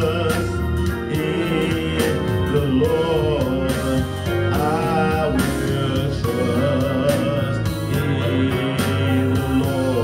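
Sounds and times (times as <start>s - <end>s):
gospel backing track: 0.0s - 10.0s
man singing gospel: 0.0s - 10.0s.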